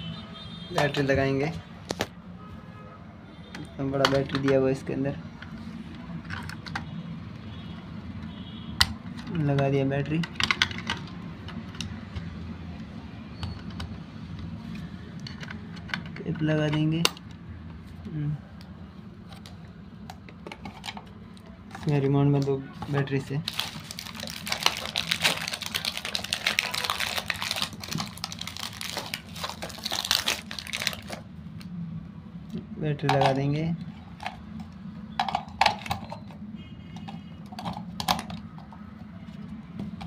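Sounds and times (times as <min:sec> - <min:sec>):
plastic clicks and knocks: 0:08.8 - 0:12.3.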